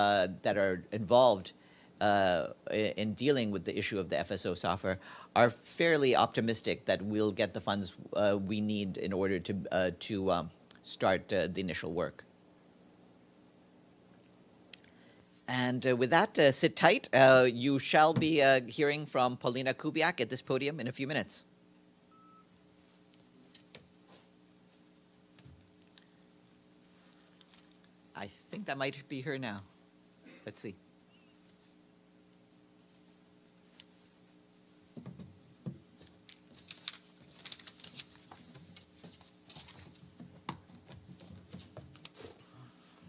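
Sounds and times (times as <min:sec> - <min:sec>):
faint room hum: 0:00.0 - 0:43.0
faint electronic beep: 0:22.1 - 0:22.5.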